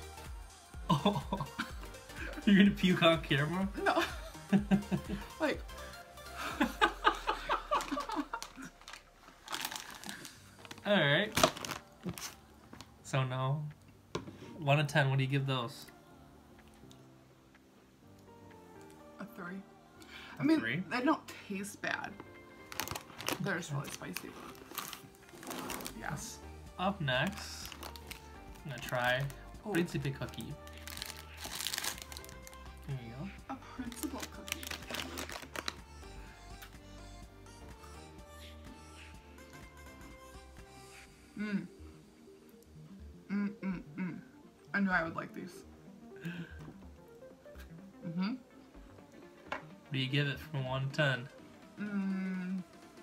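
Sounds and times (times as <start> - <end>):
background music: 0.0 - 53.0
plastic wrapper crinkling: 7.7 - 12.9, 22.6 - 26.3, 27.2 - 32.8, 33.8 - 36.0.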